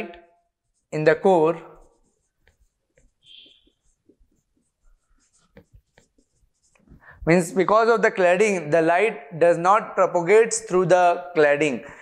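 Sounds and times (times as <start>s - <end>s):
marker writing on whiteboard: 0.0s - 7.6s
marker squeak: 1.6s - 6.8s.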